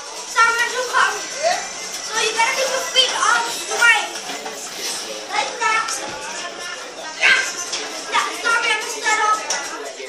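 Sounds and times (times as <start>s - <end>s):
children shouting and squealing: 0.0s - 4.2s, 5.2s - 9.8s.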